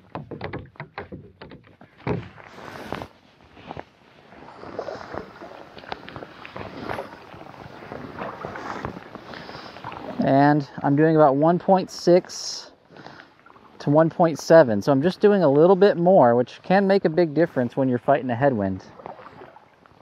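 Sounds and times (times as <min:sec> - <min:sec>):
paddle splashing in water: 0:00.0 - 0:20.0.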